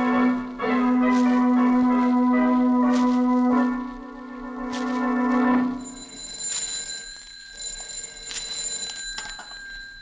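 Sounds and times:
telephone ringing faintly: 5.2s - 10.0s.

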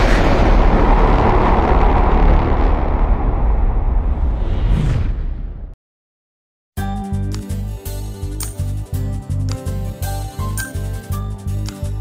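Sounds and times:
deep boom with low rumble: 0.0s - 5.8s.

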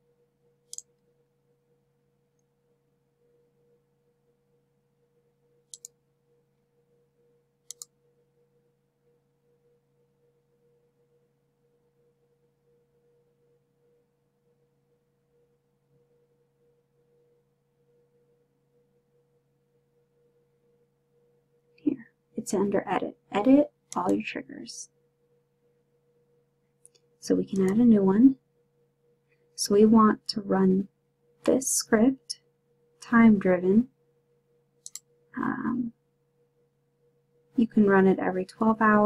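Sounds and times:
faint electrical hum: 0.0s - 39.0s
computer mouse clicks: 0.7s - 1.0s, 5.7s - 6.0s, 7.6s - 8.0s, 34.8s - 35.1s.

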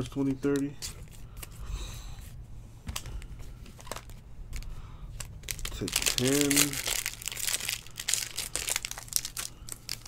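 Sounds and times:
steady low hum: 0.0s - 10.0s
foil wrapper crinkle: 3.8s - 10.0s.

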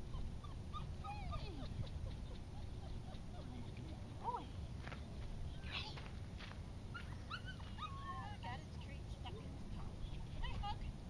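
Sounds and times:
dog whining in high cries: 0.1s - 1.7s, 7.0s - 8.2s.

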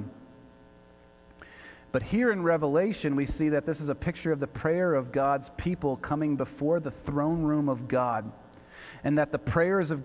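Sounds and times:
electrical mains hum: 0.0s - 10.0s
man speaking: 1.9s - 8.4s, 9.0s - 10.0s.

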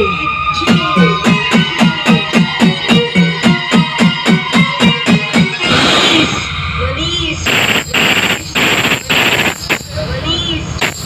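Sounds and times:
dance music over sound system: 0.1s - 5.6s
harsh rapid noise bursts: 0.7s - 6.4s, 7.4s - 10.1s, 10.8s - 11.0s.

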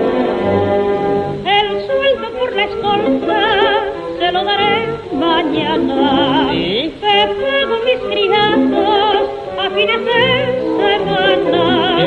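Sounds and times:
person singing with vibrato: 0.3s - 12.0s.

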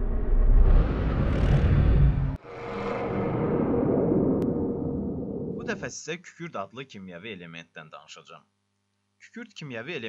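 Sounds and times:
bass-heavy whoosh: 0.0s - 2.4s.

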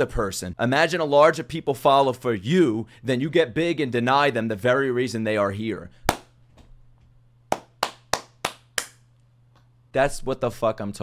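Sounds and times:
person clapping hands: 6.1s - 6.3s, 7.5s - 9.0s.

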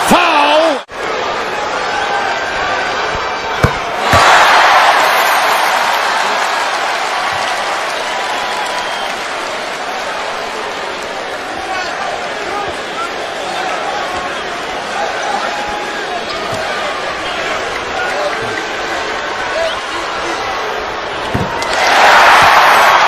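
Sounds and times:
crowd cheering: 0.0s - 23.0s.

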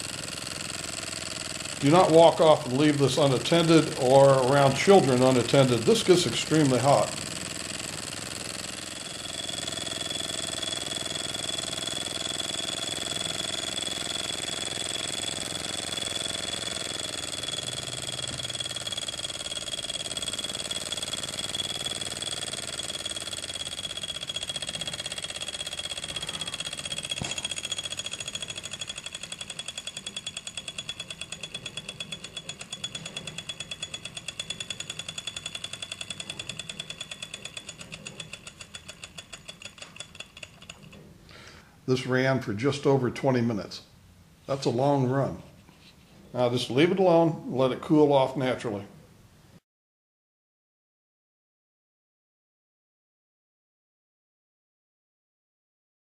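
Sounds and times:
steam engine chuffing and clattering: 0.0s - 41.0s.

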